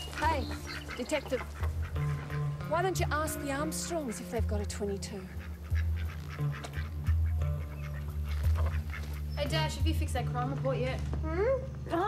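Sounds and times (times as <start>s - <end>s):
ducks quacking: 0.0s - 10.0s
background music drone: 0.0s - 12.0s.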